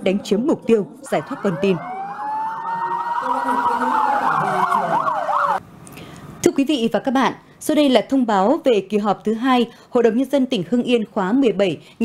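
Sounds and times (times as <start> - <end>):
police siren wailing: 1.0 - 5.6
siren yelp warbling: 1.0 - 5.6.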